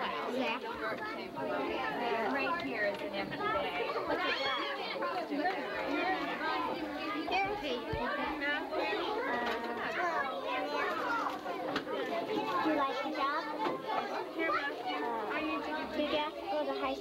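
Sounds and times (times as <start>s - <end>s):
children chattering: 0.0s - 17.0s.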